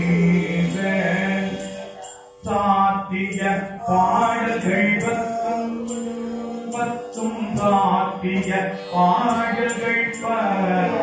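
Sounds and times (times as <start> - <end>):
mantra chanting: 0.0 - 11.0
small metal instrument ringing strikes: 3.3 - 10.4.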